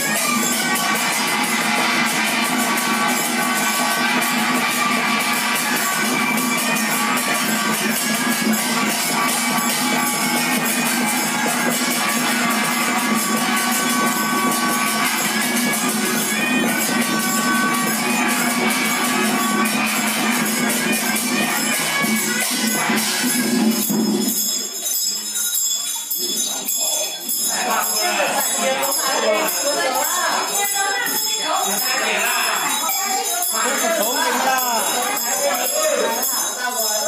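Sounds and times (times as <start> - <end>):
wind instrument melody: 0.0 - 25.1.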